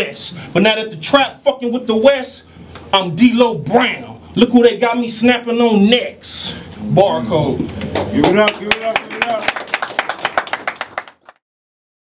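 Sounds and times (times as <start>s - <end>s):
people clapping: 7.8s - 11.4s.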